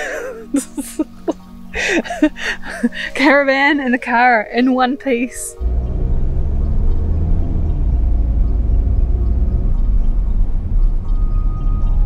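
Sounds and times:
faint background music: 0.0s - 12.0s
car engine and tyres rumbling: 5.5s - 12.0s.

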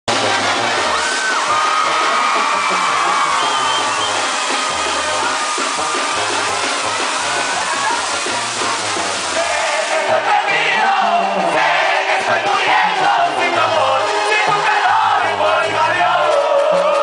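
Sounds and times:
brass band playing: 0.0s - 17.0s
crowd noise: 0.0s - 17.0s.

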